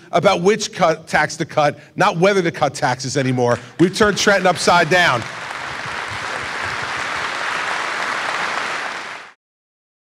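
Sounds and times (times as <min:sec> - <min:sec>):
audience applauding: 0:03.5 - 0:09.4.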